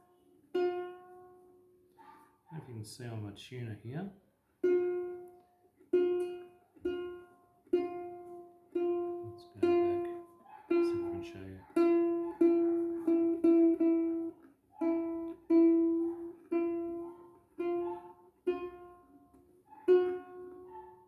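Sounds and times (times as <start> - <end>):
ukulele string plucked: 4.6 - 11.1, 17.6 - 20.6.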